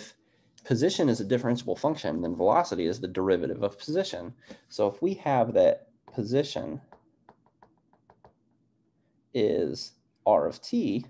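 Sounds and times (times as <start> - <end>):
stylus tapping tablet screen: 5.4 - 8.7.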